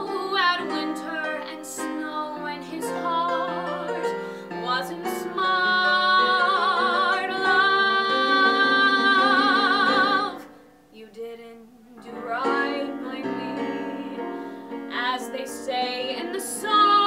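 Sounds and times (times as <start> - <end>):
woman singing with vibrato: 0.0 - 17.0.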